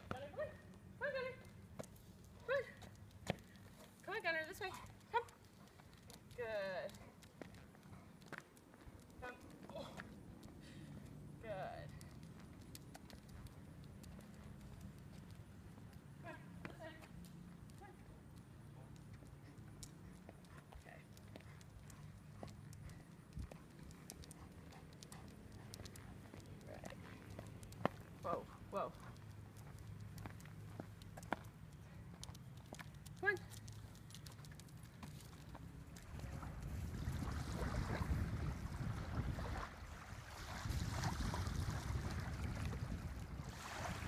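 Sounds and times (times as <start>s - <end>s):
footsteps on asphalt: 12.0s - 36.8s
wind buffeting microphone: 36.0s - 44.0s.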